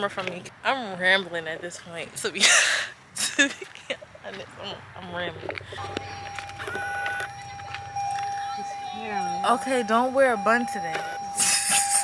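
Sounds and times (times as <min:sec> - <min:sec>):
car warning tone: 0:05.3 - 0:12.0
higher warning tone: 0:05.7 - 0:12.0.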